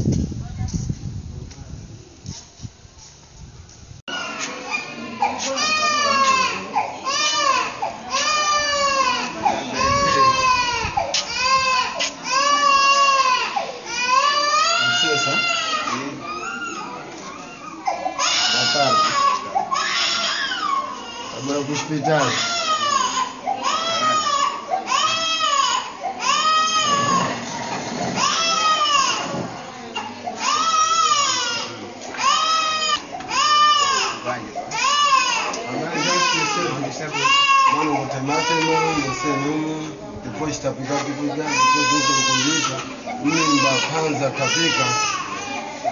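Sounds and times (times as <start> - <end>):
baby crying: 4.1 - 27.5, 30.0 - 39.9, 41.1 - 45.9.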